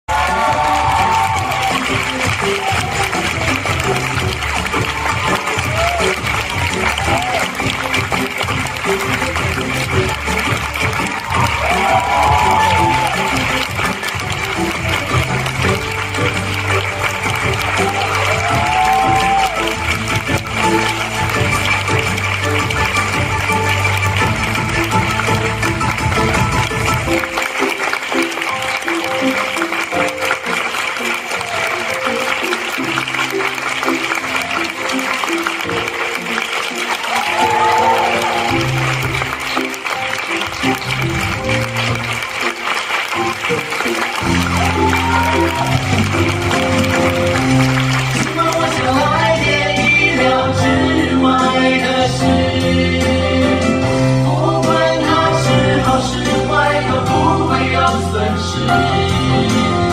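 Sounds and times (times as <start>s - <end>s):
audience applauding: 0.0s - 58.3s
musical theatre music with bass: 0.0s - 59.9s.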